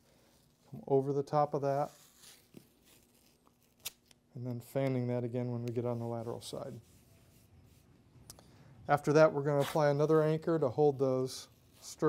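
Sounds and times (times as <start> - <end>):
tape rustling: 1.8 - 4.2
sharp crackle of tape: 1.8 - 5.0.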